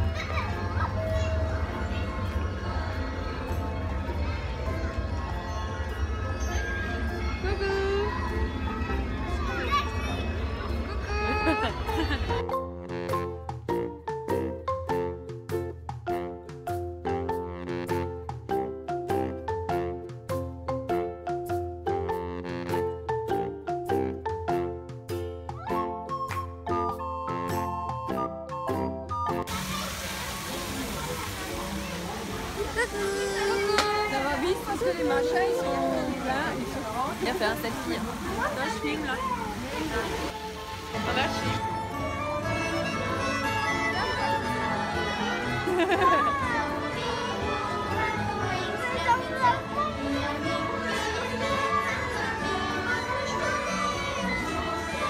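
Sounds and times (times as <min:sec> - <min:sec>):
people talking outdoors: 0:00.0 - 0:12.5, 0:29.4 - 0:55.0
background music: 0:00.0 - 0:55.0
rushing water in a channel: 0:29.4 - 0:43.0
faint voices: 0:29.5 - 0:55.0.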